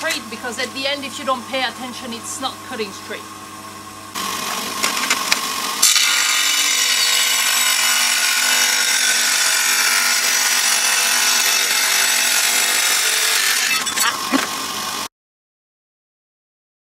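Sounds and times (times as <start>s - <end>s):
tile saw motor running: 0.0s - 15.1s
saw blade grinding tile: 4.3s - 14.6s.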